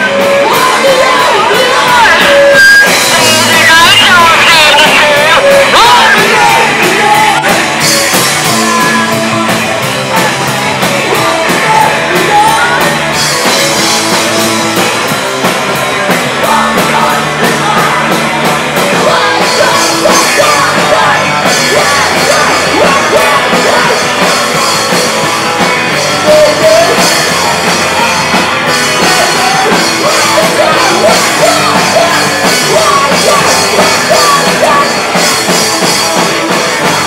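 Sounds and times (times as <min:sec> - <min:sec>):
drum kit: 0:00.0 - 0:37.0
electric guitars: 0:00.0 - 0:37.0
person singing: 0:00.0 - 0:37.0.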